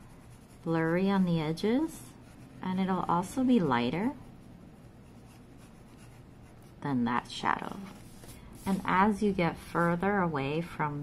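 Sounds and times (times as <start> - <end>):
pencil scratching on paper: 0.0 - 6.8.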